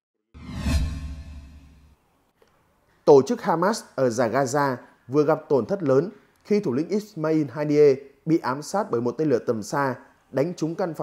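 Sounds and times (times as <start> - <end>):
deep low boom: 0.4 - 1.9
transition whoosh: 0.4 - 2.0.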